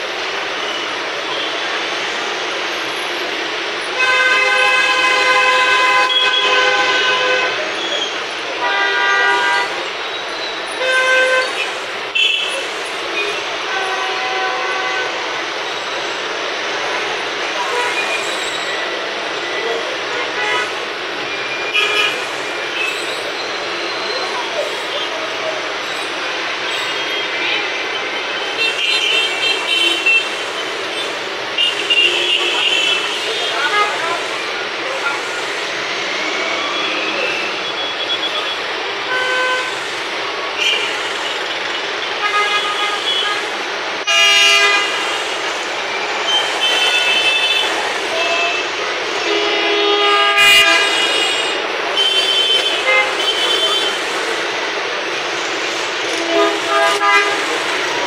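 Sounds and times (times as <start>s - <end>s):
loud horn blasts: 3.9s - 7.7s, 8.6s - 9.9s, 10.8s - 12.6s, 13.6s - 15.3s, 20.1s - 20.8s, 21.7s - 22.3s, 31.6s - 35.6s, 36.6s - 39.9s, 42.1s - 45.2s, 46.2s - 54.1s, 56.0s - 58.0s.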